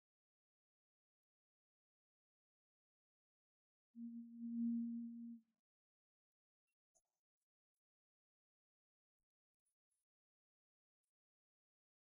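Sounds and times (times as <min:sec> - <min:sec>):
low electronic beep: 0:04.0 - 0:05.4.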